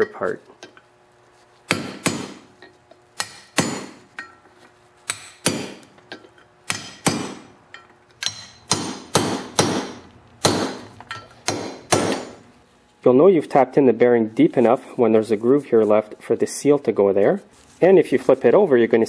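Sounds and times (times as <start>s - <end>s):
hammer tapping on metal: 1.7s - 2.4s, 5.1s - 12.4s.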